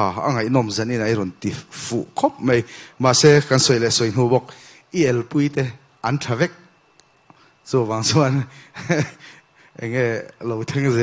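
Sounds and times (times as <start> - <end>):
man speaking in low voice: 0.0 - 6.6, 7.7 - 8.5, 9.8 - 11.0
short breathy hiss: 2.7 - 3.0.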